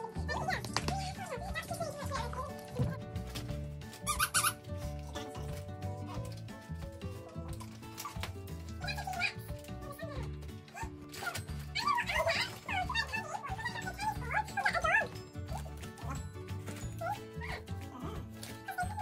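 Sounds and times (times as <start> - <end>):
background music: 0.0 - 19.0
squeaky dog toy squeals: 4.0 - 4.7.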